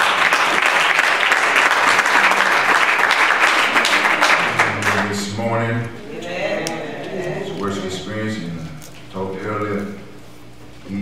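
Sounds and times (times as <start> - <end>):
man speaking slowly: 4.4 - 6.3, 7.0 - 10.2.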